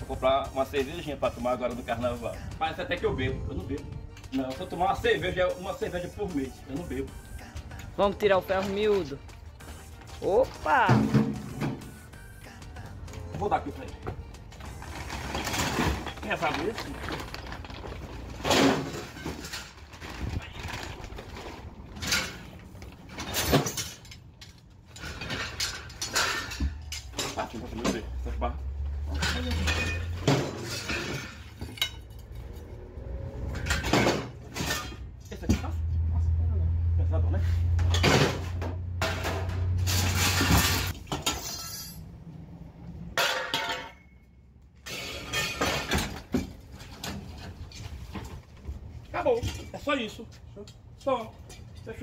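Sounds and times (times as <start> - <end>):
background music: 0.0 - 19.8
scrap iron clanking: 21.9 - 28.1, 29.0 - 35.6, 37.7 - 42.2, 43.2 - 44.2, 44.8 - 48.0.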